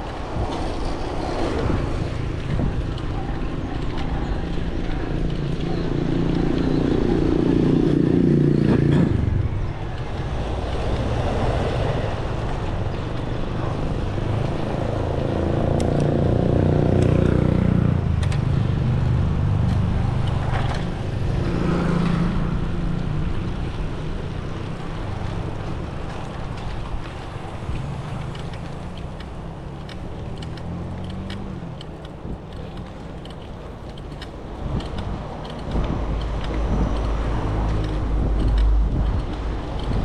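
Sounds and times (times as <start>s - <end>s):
bike tyres rolling on asphalt: 0.0s - 40.0s
wind buffeting microphone: 0.0s - 40.0s
faint clicks: 18.2s - 18.5s, 24.7s - 40.0s.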